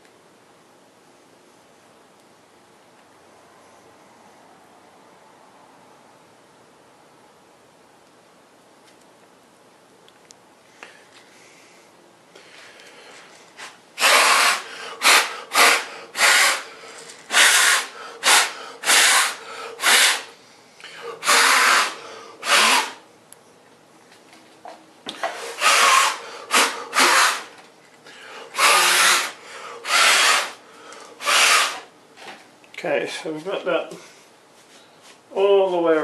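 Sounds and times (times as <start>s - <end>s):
person blowing puffs of breath: 10.7s - 23.0s, 25.3s - 31.8s.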